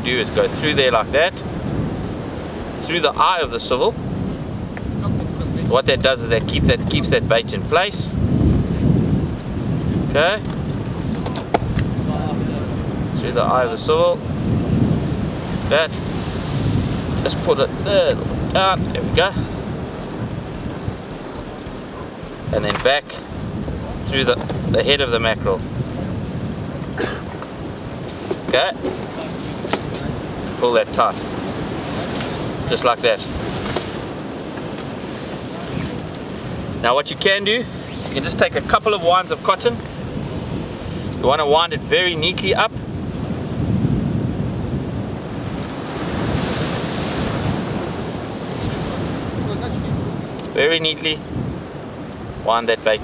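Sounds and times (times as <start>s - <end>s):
surf rushing: 0.0s - 53.0s
wind buffeting microphone: 0.0s - 53.0s.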